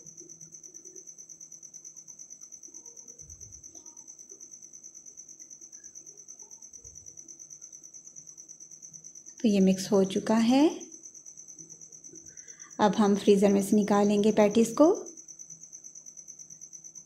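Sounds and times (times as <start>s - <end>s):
faint high-pitched whine: 0.0s - 17.0s.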